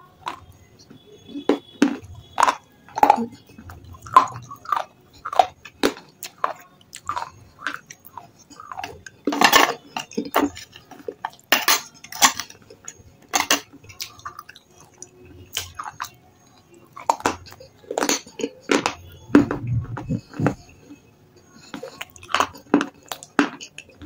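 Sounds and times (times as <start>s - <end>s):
crunching and chewing clay chips: 0.0s - 24.0s.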